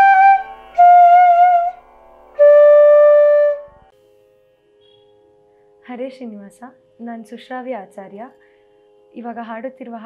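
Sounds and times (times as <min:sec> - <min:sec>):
long held flute note: 0:00.0 - 0:03.9.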